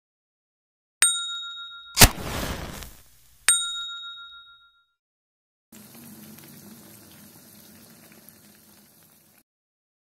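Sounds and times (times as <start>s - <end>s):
bright bell-like ding: 1.0s - 2.1s, 3.5s - 4.9s.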